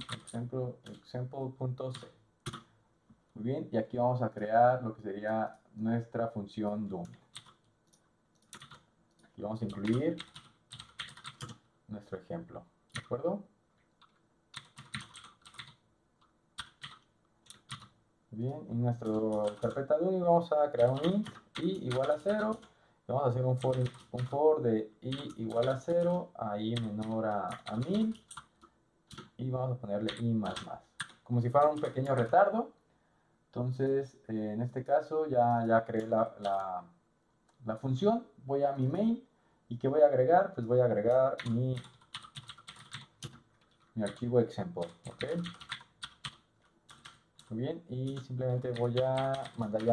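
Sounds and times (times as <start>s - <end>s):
computer keyboard typing: 0.0s - 1.0s, 1.9s - 2.7s, 7.0s - 11.6s, 12.9s - 13.2s, 14.0s - 15.8s, 16.6s - 18.0s, 18.9s - 20.0s, 20.6s - 22.7s, 23.4s - 24.4s, 25.0s - 29.4s, 30.0s - 32.4s, 35.7s - 36.7s, 40.6s - 49.9s.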